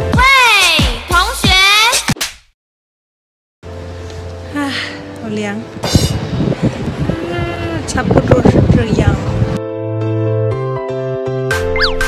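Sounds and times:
wind noise on microphone: 5.7s - 9.6s.

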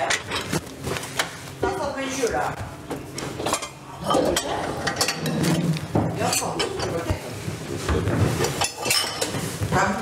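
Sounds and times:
dishes and cutlery clinking: 0.0s - 0.6s, 3.1s - 7.2s, 7.8s - 10.0s
people talking: 1.6s - 2.7s, 6.1s - 7.4s, 9.7s - 10.0s.

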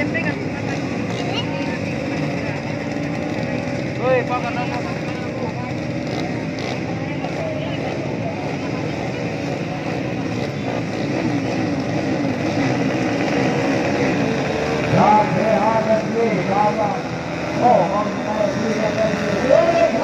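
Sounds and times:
motocross bike engines revving: 0.0s - 20.0s.

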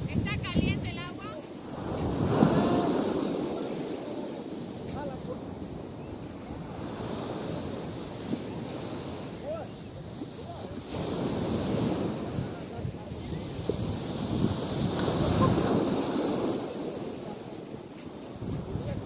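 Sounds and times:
ocean surf breaking: 0.0s - 19.0s
wind buffeting microphone: 0.0s - 19.0s.

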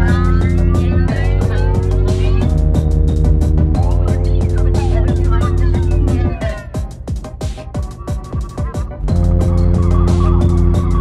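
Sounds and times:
electronic tekno music: 0.0s - 11.0s
heavy bass: 0.0s - 11.0s.

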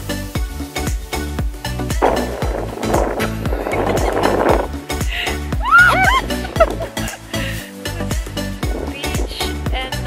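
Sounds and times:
upbeat music with drum beat: 0.0s - 10.0s
rough rushing noise: 1.9s - 5.6s, 8.4s - 9.7s.

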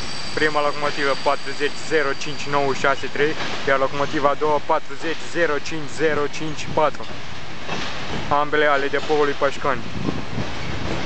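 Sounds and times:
freight train rolling over bridge: 0.0s - 11.0s.

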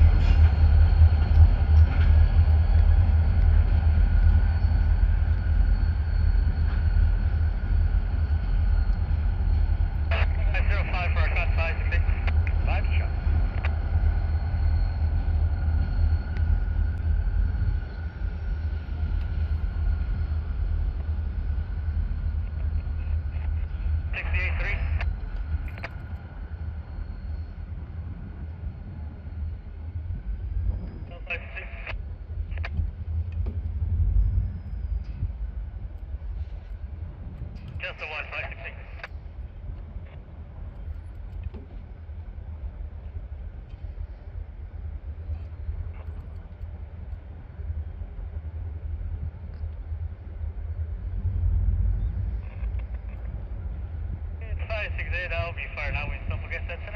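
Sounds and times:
low outdoor rumble: 0.0s - 56.9s.

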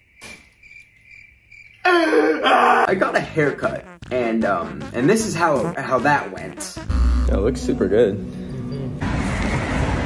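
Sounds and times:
crickets chirping: 0.0s - 2.1s
music: 3.2s - 9.1s.

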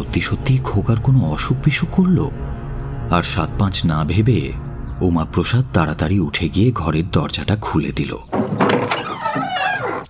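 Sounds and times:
door hinges creaking: 8.3s - 10.0s.

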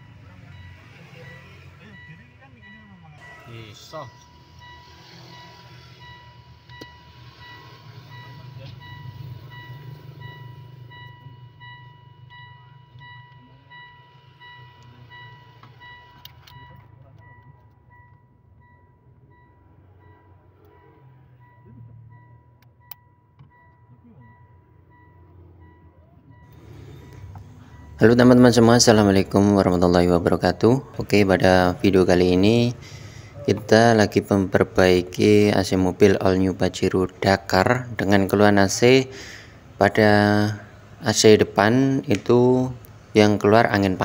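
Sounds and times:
high electronic tone: 0.0s - 31.0s
rapid beeping: 0.0s - 44.0s
vehicle engine hum: 0.0s - 44.0s.

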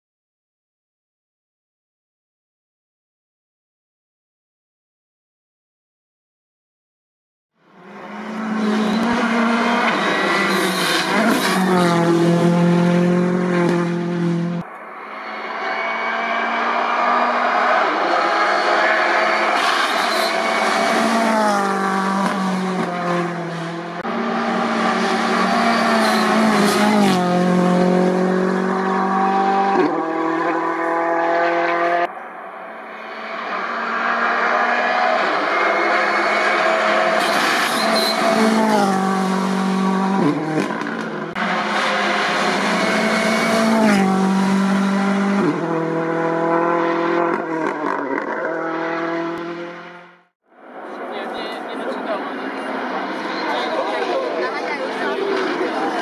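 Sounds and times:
rally car engine revving: 7.8s - 32.1s, 32.8s - 50.3s.

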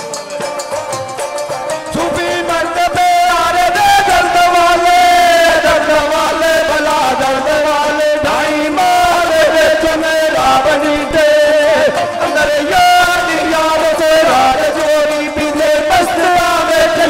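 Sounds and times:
man singing through a microphone: 1.8s - 17.0s.

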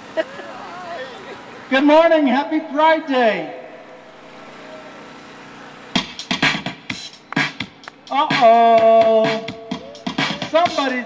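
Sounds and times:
street traffic: 0.0s - 11.0s
vehicle engines idling: 0.0s - 11.0s.

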